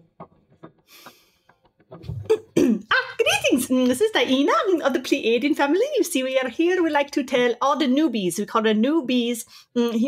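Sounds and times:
woman breathing: 0.8 - 1.5, 9.5 - 9.8
woman clearing throat and coughing: 2.1 - 3.4.

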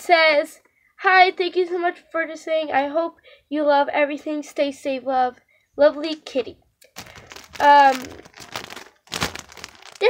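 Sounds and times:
plastic packaging crinkling: 6.8 - 10.0.

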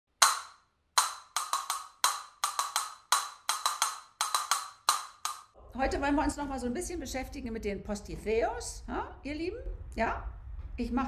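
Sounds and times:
castanets clacking: 0.2 - 5.5.

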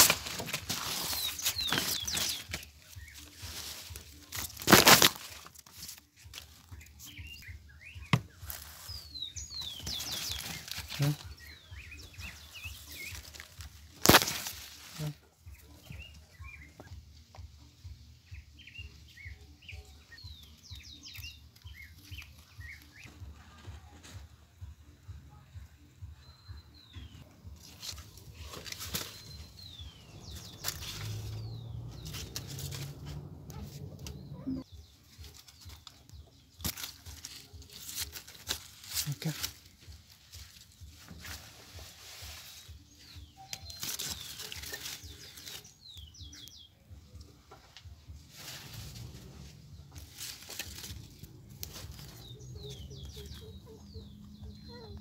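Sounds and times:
birds chirping: 0.0 - 5.0, 6.3 - 24.0, 24.8 - 55.0
rustling of corn husks: 0.0 - 16.6, 27.2 - 46.6, 47.6 - 54.8.

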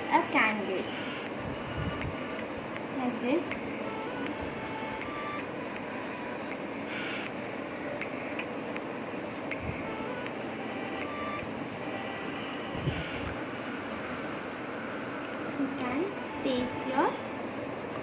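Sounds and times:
steady background noise: 0.0 - 18.0.

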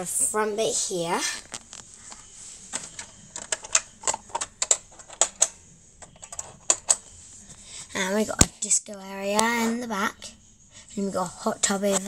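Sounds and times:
plastic toy parts clicking: 2.8 - 7.0.

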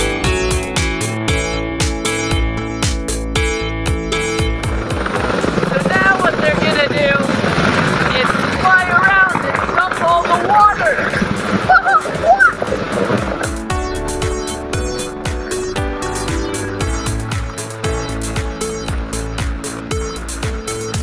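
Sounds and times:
helicopter rotor and engine: 3.9 - 9.3.

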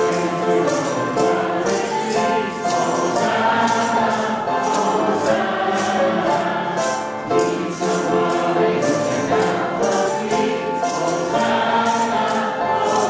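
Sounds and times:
choir and congregation singing hymn: 0.0 - 13.0
steady percussive beat: 0.0 - 13.0.

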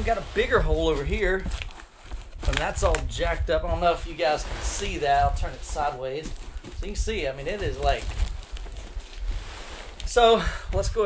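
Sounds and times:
cardboard rustling and scuffing: 0.0 - 10.3.

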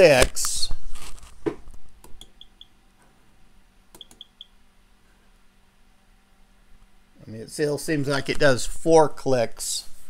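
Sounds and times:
keystroke click: 3.9 - 4.4.

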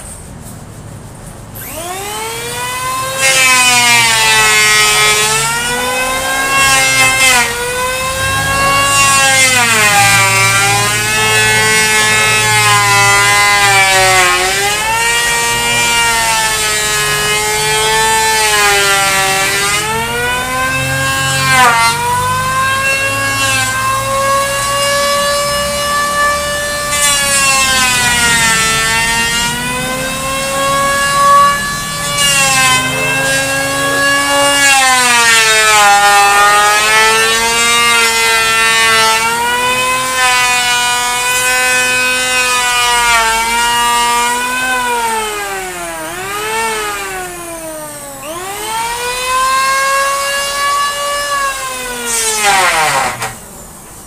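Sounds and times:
electric hand planer whining: 1.6 - 53.7.

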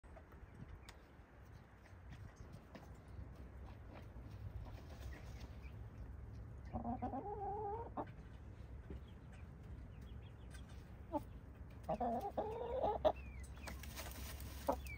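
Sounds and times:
hens scratching and rustling in dirt: 0.1 - 14.9.

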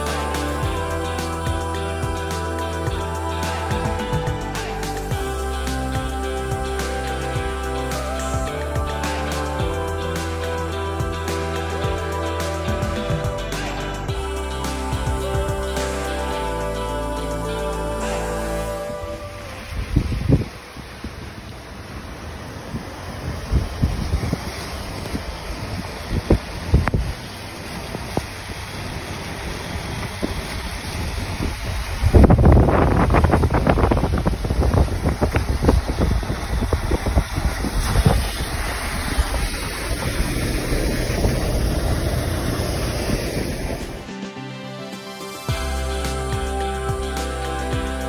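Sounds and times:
car road noise: 0.0 - 44.4
wind on microphone: 17.4 - 21.6, 22.6 - 28.7, 29.5 - 44.1.

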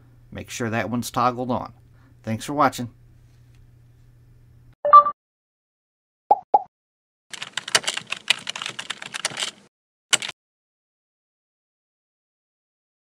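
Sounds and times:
keyboard typing clicks: 7.3 - 10.3.

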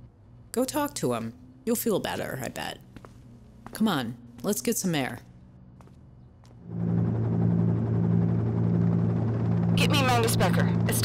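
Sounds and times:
low motor drone: 6.4 - 11.0.

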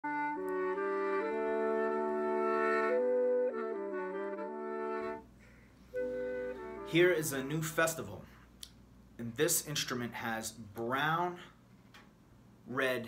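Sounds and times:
wind instrument chords: 0.0 - 7.9.

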